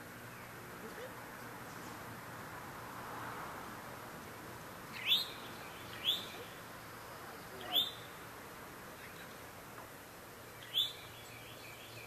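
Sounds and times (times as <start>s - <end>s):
bird chirping: 4.9s - 8.2s, 10.5s - 12.0s.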